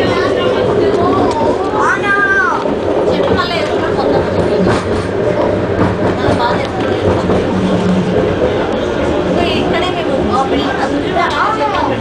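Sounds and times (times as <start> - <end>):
passengers' voices: 0.0 - 12.0
train car rumble with faint hum: 0.0 - 12.0.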